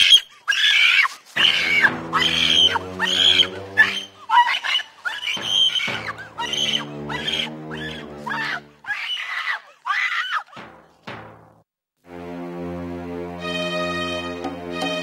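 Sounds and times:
woman screaming and wailing: 0.4s - 10.5s
music score of low notes: 12.1s - 15.0s.

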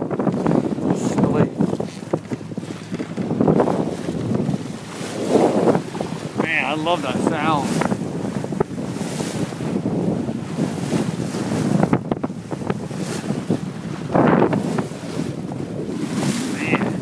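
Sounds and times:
bow wave rushing and splashing: 0.0s - 17.0s
wind buffeting microphone: 0.0s - 17.0s.

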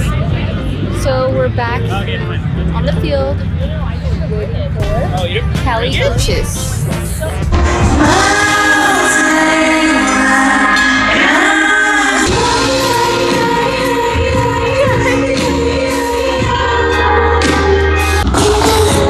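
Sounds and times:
live pop music: 0.0s - 19.0s
woman singing: 5.8s - 19.0s.

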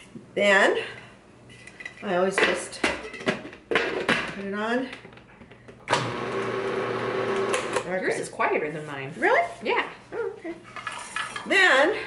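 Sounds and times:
food processor motor running: 5.9s - 7.8s.

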